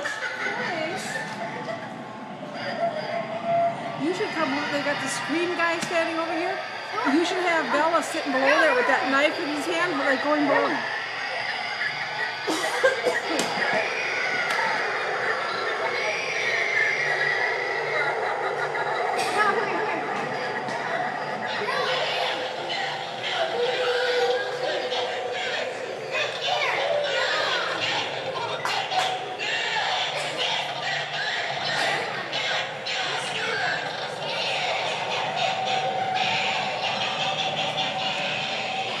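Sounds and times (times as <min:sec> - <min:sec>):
busy shop background noise: 0:00.0 - 0:39.0
eerie wavering voice-like wailing: 0:00.0 - 0:39.0.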